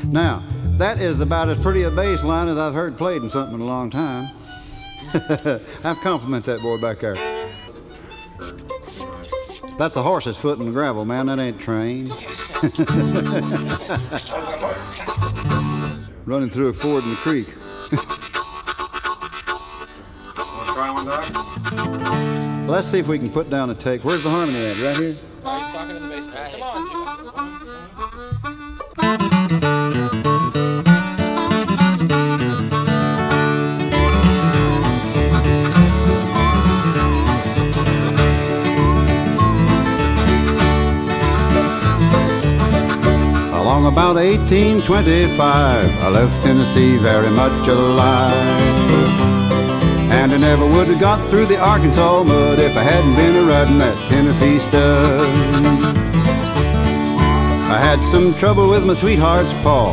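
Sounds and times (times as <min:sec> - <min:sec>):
bass: 0:00.0 - 0:04.2, 0:15.2 - 0:16.1, 0:29.8 - 0:59.9
man speaking: 0:00.0 - 0:04.4, 0:05.4 - 0:07.4, 0:09.8 - 0:15.4, 0:16.2 - 0:17.6, 0:20.5 - 0:21.4, 0:22.6 - 0:27.0, 0:57.6 - 0:59.9
soft held instrument notes: 0:00.0 - 0:14.0, 0:14.6 - 0:23.3, 0:24.3 - 0:59.9
picked acoustic guitar: 0:00.0 - 0:24.4, 0:25.0 - 0:59.9
studio chatter: 0:12.2 - 0:15.7.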